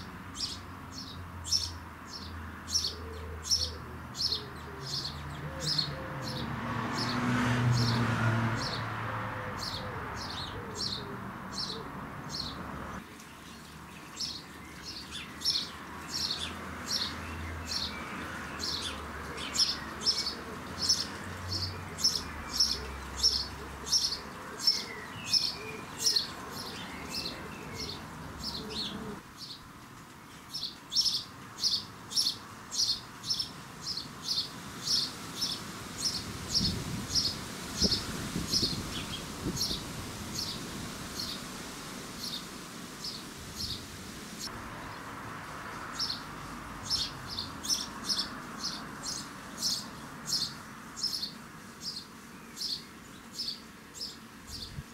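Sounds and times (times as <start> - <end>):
sparrow chirping: 0.0 - 8.0, 9.5 - 29.6, 30.3 - 40.6, 41.2 - 41.5, 42.2 - 45.0, 45.9 - 54.8.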